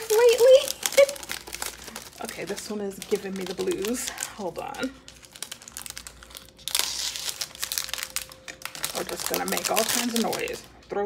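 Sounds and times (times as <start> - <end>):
plastic sleeve crinkling: 0.0 - 10.9
scissors cutting plastic: 4.8 - 10.6.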